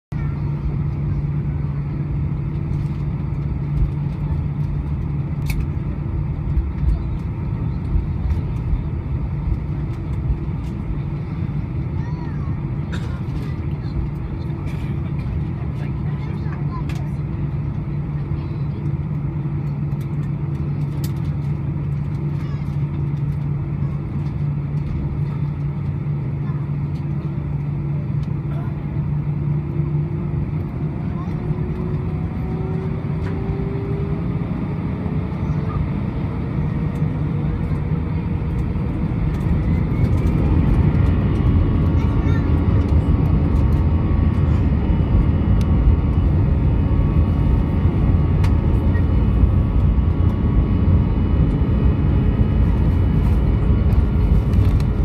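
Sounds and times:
jet engines low hum: 0.1s - 55.0s.

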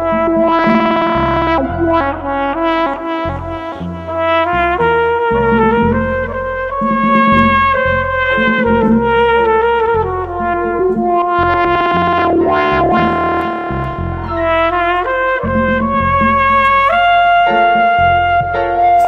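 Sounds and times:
bass: 0.0s - 19.0s
flugelhorn melody: 0.0s - 19.0s
piano: 0.0s - 19.0s.

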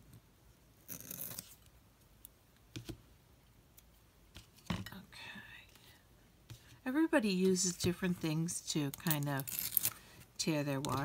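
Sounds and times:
woman whispering: 4.9s - 5.8s.

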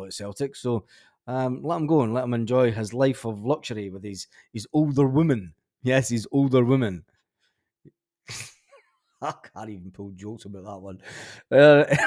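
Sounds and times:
man stifling laughter: 11.7s - 12.0s.

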